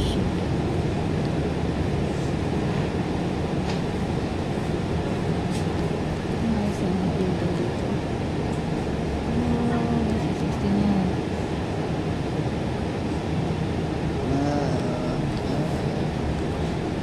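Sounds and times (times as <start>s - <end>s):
moving bus rumble: 0.0s - 17.0s
background voices: 14.2s - 16.7s.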